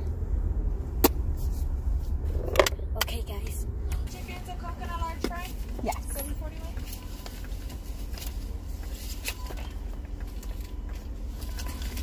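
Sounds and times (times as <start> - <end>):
car engine rumbling: 0.0 - 12.0.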